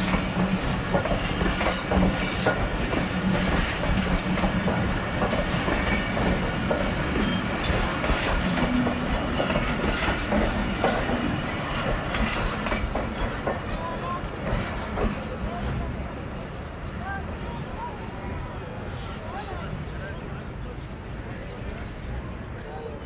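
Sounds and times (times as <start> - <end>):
wheels clicking over rail joints: 0.0 - 16.0
train wheels rumbling on rails: 0.0 - 23.0.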